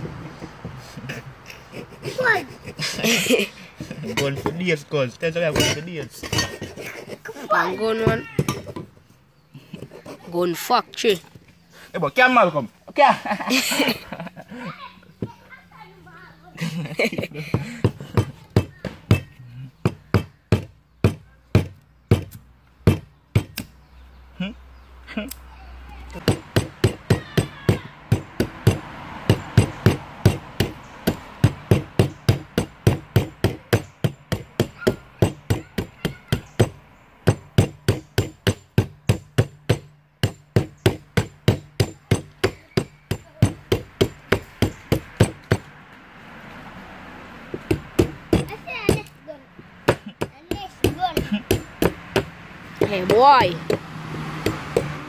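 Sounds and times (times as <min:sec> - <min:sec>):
machete chopping wood: 0:17.6 - 0:23.8, 0:26.2 - 0:45.7, 0:47.5 - 0:49.2, 0:49.8 - 0:55.0.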